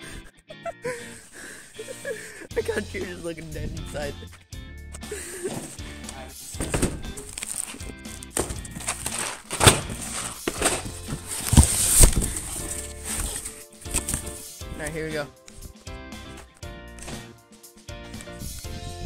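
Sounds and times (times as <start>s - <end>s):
background music: 0.0s - 19.0s
loud thumps: 6.6s - 7.4s, 8.3s - 12.6s
cardboard boxes knocking: 6.6s - 14.2s
plastic shrink-wrap crinkling: 6.6s - 14.5s.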